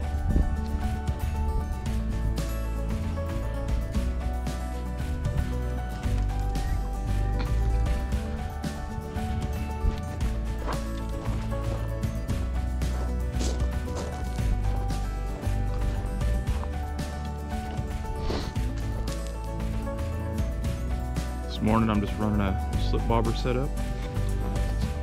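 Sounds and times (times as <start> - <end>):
background music with deep bass: 0.0 - 25.0.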